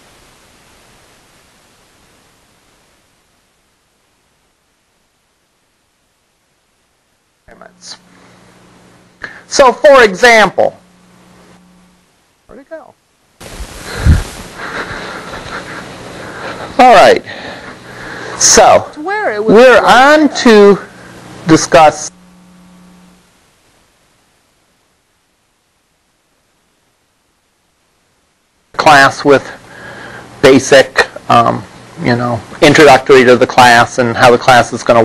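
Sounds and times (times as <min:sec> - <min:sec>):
faint indistinct sounds: 0:00.0 - 0:28.7
recording hiss: 0:00.0 - 0:35.0.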